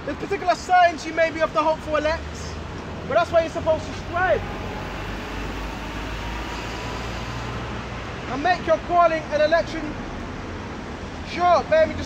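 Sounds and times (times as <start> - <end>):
road traffic rumble and hiss: 0.0 - 12.0
bus passing: 2.0 - 12.0.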